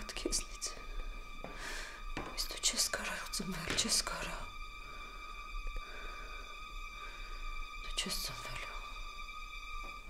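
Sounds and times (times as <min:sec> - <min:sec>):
woman whispering: 0:07.9 - 0:08.9.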